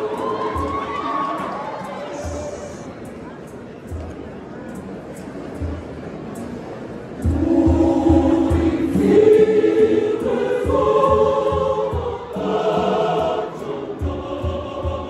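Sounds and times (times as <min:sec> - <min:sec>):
choir singing in harmony: 0:00.0 - 0:02.9, 0:07.2 - 0:15.0
low drum beat: 0:07.2 - 0:15.0.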